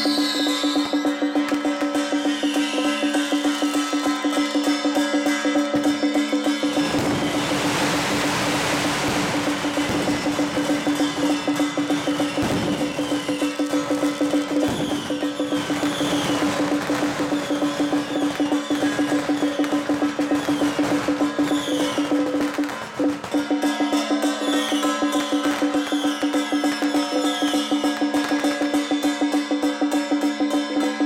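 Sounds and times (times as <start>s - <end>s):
cymbal wash: 0.0s - 31.0s
drums beating fast rhythm: 0.0s - 31.0s.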